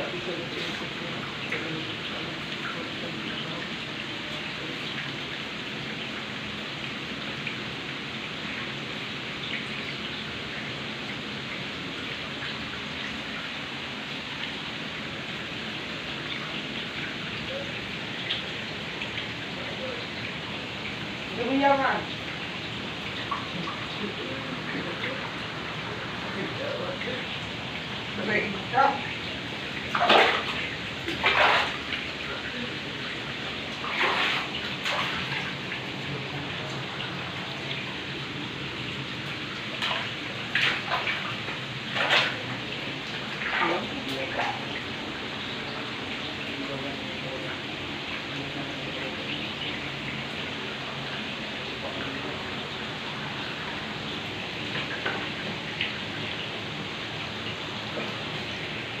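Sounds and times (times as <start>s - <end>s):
flowing water: 0.0s - 59.0s
bare feet splashing in water: 29.0s - 32.5s, 33.6s - 38.0s, 39.2s - 44.8s.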